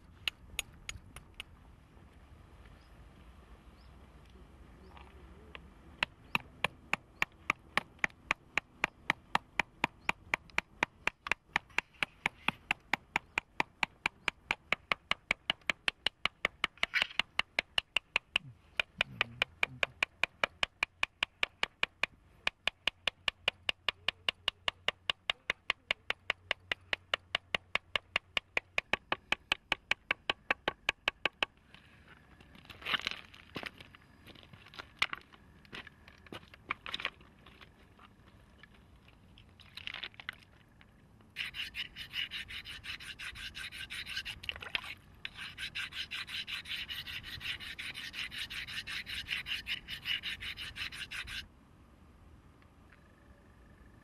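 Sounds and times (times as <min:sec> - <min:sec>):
stone striking stone: 0:06.0 - 0:31.6, 0:41.4 - 0:51.4
knocks of stones: 0:32.4 - 0:37.8
stone blade grinding on stone: 0:41.4 - 0:44.4, 0:45.3 - 0:51.4.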